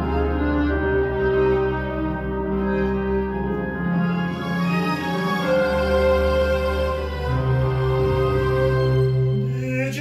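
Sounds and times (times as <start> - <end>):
slow instrumental chords: 0.0 - 9.6.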